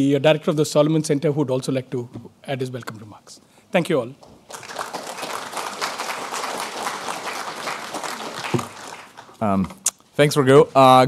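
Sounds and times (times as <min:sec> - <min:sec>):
audience applauding: 0:04.5 - 0:09.4.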